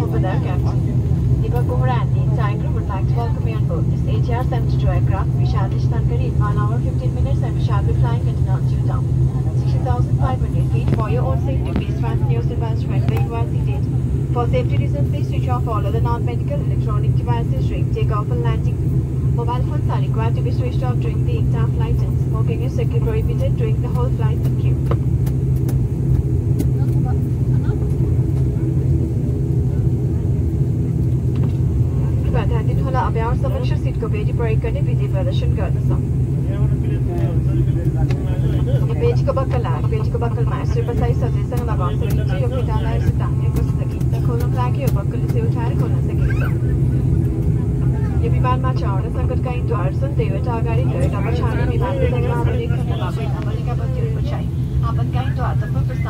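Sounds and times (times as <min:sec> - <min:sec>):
announcement over public address: 0:00.0 - 0:24.9, 0:26.9 - 0:56.0
people talking: 0:00.0 - 0:24.9, 0:26.6 - 0:30.7, 0:31.9 - 0:56.0
aircraft cabin drone: 0:00.0 - 0:56.0.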